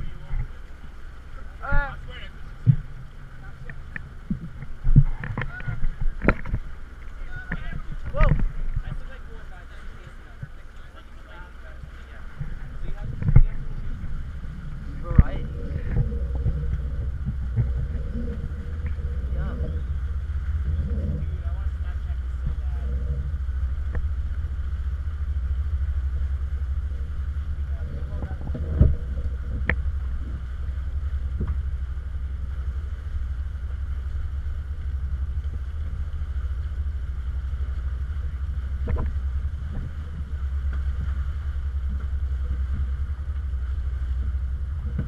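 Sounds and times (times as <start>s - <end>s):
boat low rumble: 0.0s - 45.0s
wind and water noise: 0.0s - 45.0s
faint voices: 5.2s - 23.4s.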